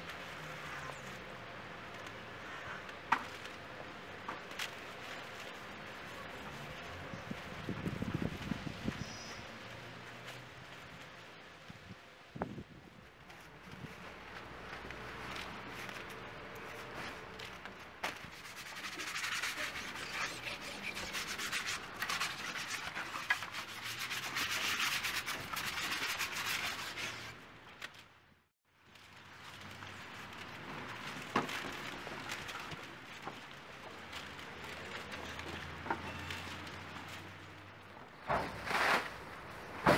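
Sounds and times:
hands rubbing mud on boards: 18.3s - 27.3s.

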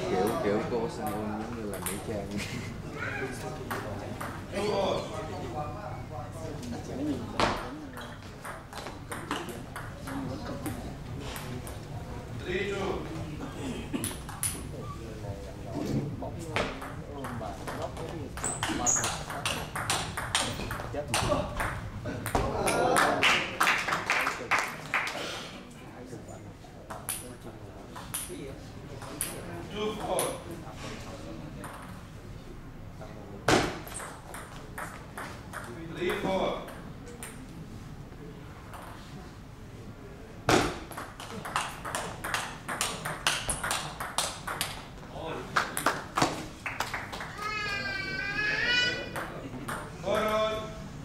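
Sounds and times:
table tennis ball hits: 7.4s - 10.8s, 16.6s - 22.8s, 26.9s - 27.3s, 33.5s - 37.4s, 38.7s - 39.0s, 40.5s - 44.9s
table tennis ball clicking: 40.9s - 44.8s.

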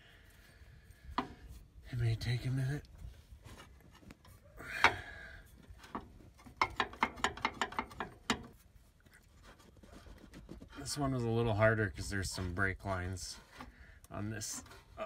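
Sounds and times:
metal clicks and rattles: 5.8s - 8.6s.

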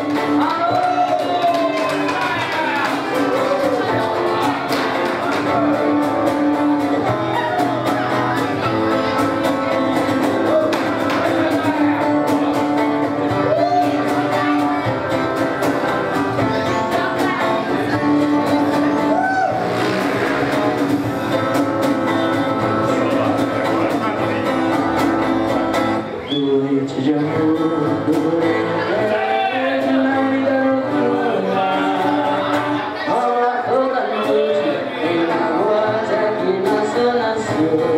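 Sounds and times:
acoustic guitar strummed: 0.0s - 37.9s
man singing into a microphone: 26.2s - 37.9s.

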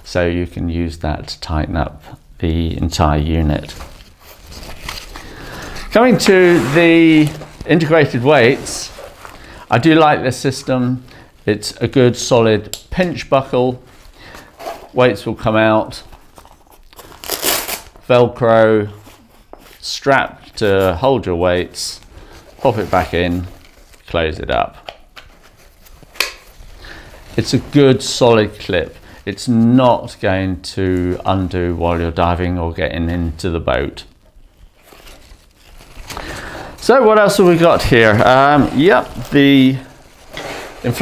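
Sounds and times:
fabric handling: 3.5s - 10.0s, 34.6s - 41.0s
velcro ripping apart: 16.8s - 18.0s.

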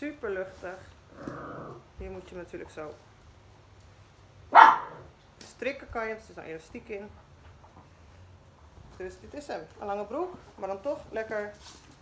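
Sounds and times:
dog barking: 4.5s - 5.1s.

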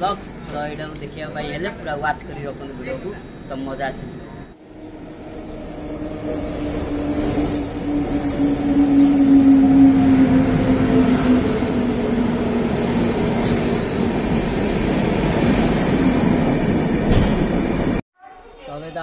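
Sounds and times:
electric locomotive passing: 0.0s - 18.0s
train wheels rumbling on rails: 4.9s - 18.0s.

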